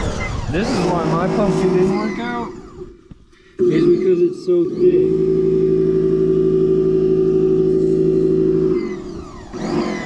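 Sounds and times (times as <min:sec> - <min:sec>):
pressure washer running: 0:00.0 - 0:03.7, 0:04.6 - 0:10.0.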